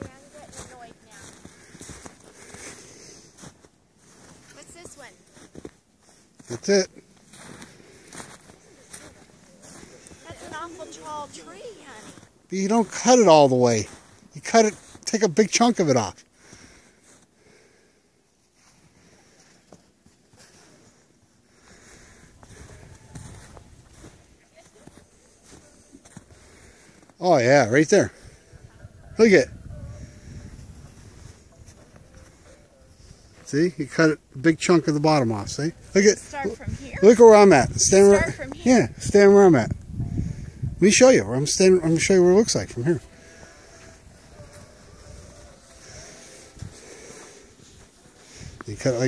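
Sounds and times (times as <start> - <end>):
soft rustling: 0.0 - 13.0, 18.4 - 27.2
footsteps in snow: 0.0 - 17.3, 18.4 - 33.8, 34.4 - 39.5, 41.0 - 49.0
faint voices: 7.4 - 12.9.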